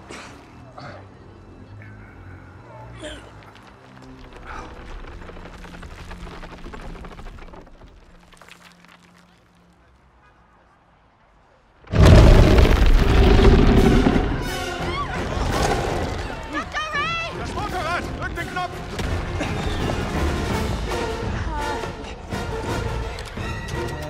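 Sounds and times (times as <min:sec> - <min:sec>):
film score music: 0:00.0 - 0:24.0
loud rumbling din: 0:11.8 - 0:16.3
deep boom: 0:11.9 - 0:14.7.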